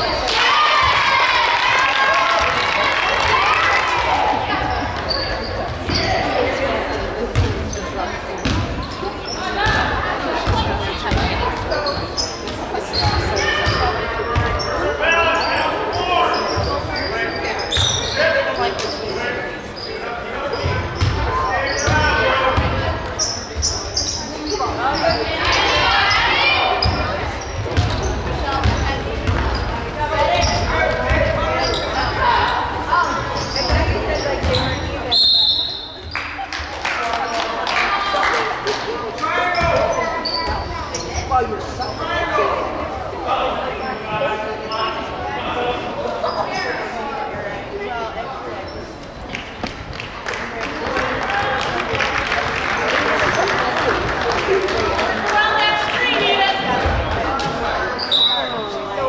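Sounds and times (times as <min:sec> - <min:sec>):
voices in a gym: 0:00.0 - 0:59.0.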